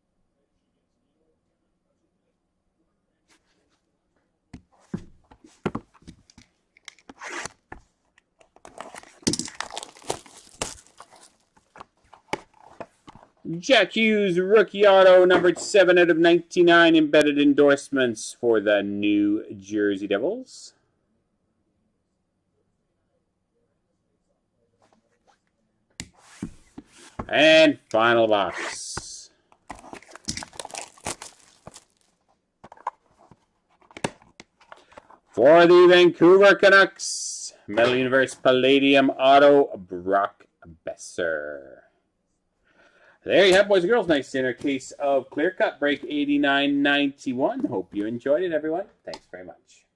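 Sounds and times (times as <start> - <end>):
packaging tearing and crinkling: 8.6 - 11.8, 29.7 - 32.2.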